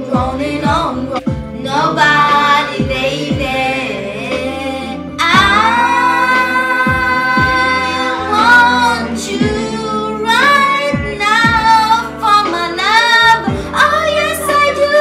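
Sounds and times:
backing track with bass drum: 0.0 - 14.9
woman singing: 0.0 - 15.0.

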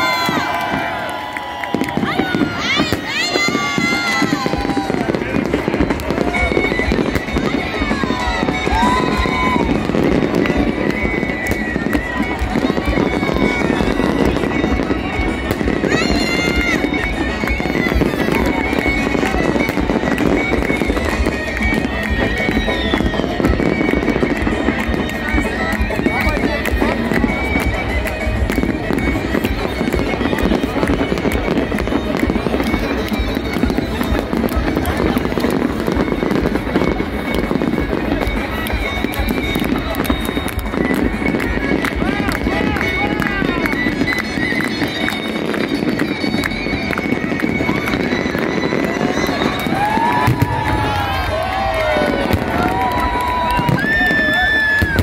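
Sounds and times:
crowd voices: 0.0 - 55.0
fireworks crackling: 0.0 - 55.0
music playing: 0.0 - 55.0.

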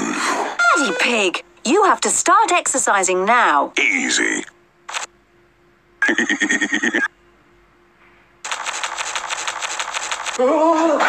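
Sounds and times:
cartoon pig laugh stuttering loop: 6.0 - 7.1.

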